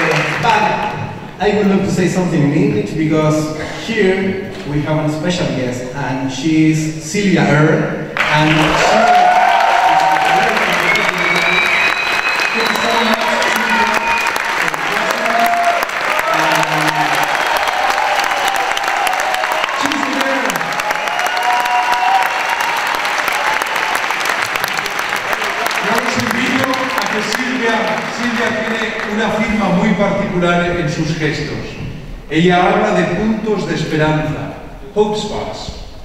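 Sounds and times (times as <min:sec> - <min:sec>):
audience applauding: 0:00.0 - 0:00.8, 0:08.2 - 0:29.6.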